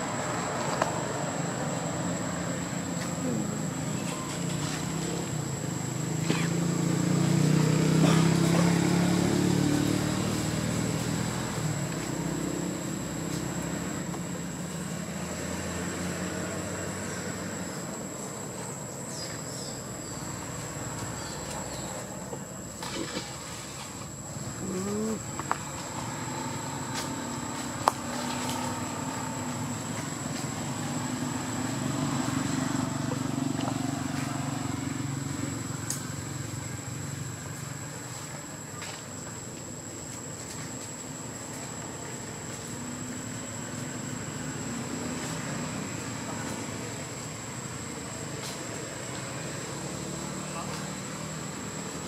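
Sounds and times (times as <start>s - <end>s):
vehicle engine passing by: 0.0s - 38.7s, 39.4s - 52.0s.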